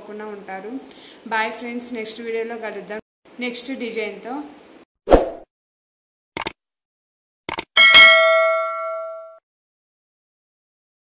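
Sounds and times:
click: 0:06.4 - 0:06.6, 0:07.5 - 0:07.7
bright bell ding: 0:07.8 - 0:09.4.

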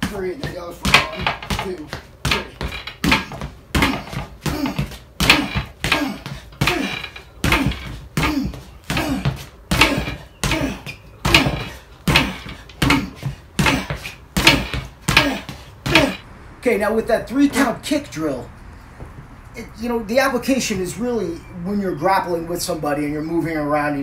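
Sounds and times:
kicks thudding on padded dummy: 0:00.0 - 0:16.2
shoes stomping on wooden floor: 0:00.0 - 0:16.2.

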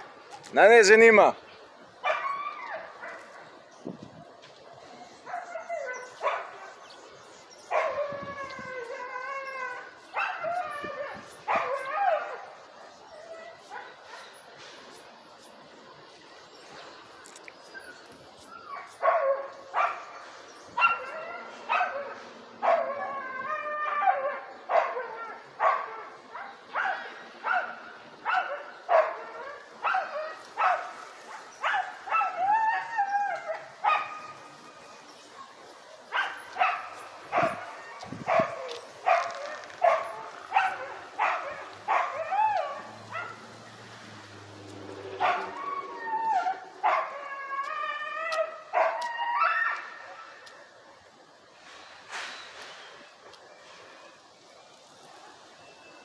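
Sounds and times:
dog barking: 0:02.0 - 0:02.3, 0:04.8 - 0:06.8, 0:07.7 - 0:08.0, 0:25.6 - 0:32.4, 0:33.8 - 0:34.4, 0:35.4 - 0:43.5, 0:45.2 - 0:45.8, 0:46.8 - 0:47.1.

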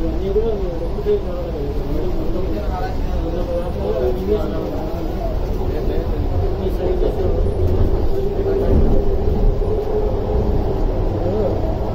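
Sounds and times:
indistinct voices talking: 0:00.0 - 0:11.9
train carriage rumbling: 0:00.0 - 0:11.9.

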